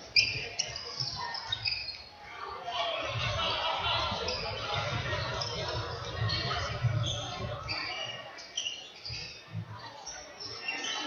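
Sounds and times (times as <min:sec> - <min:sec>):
shoes squeaking on floor: 0:00.0 - 0:02.3, 0:04.1 - 0:11.0
echoing voices: 0:02.2 - 0:08.4.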